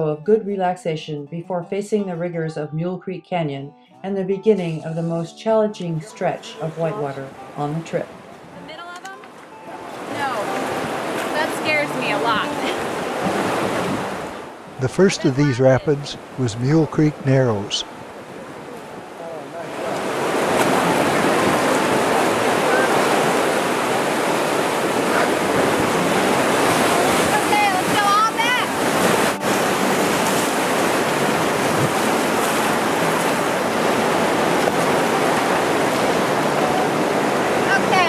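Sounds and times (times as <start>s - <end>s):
river rapids rushing: 9.8s - 38.0s
person calling out: 14.8s - 17.8s.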